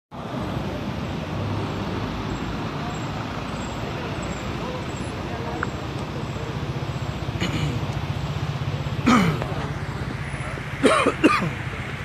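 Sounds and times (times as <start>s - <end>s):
faint voices: 0.1s - 12.0s
road traffic rumble: 0.1s - 12.0s.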